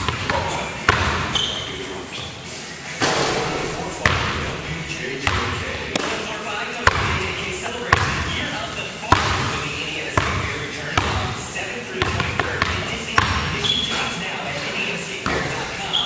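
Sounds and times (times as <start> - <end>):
basketball bouncing on wood floor: 5.2 - 6.2, 7.9 - 8.3, 9.1 - 9.5, 10.2 - 10.4, 11.0 - 11.3, 12.0 - 13.6.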